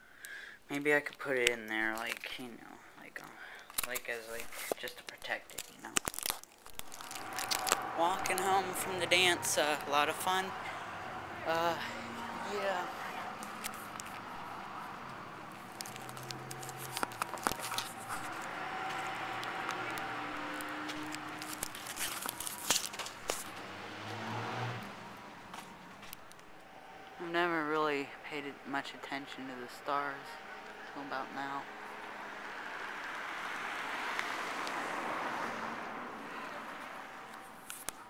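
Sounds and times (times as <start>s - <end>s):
car traffic hum: 0.0s - 38.0s
aluminium foil crinkling: 1.1s - 2.5s, 3.5s - 8.5s, 13.4s - 14.5s, 15.5s - 23.6s
footsteps on concrete: 25.5s - 26.2s.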